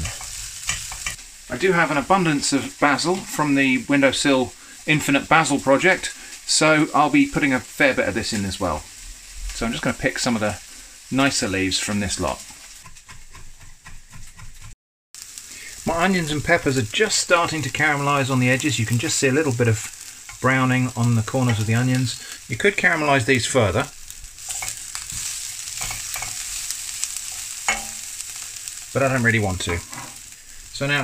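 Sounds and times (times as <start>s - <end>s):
faint hiss: 0.0s - 12.7s, 15.2s - 31.0s
onion and pepper sizzling in pan: 0.0s - 31.0s.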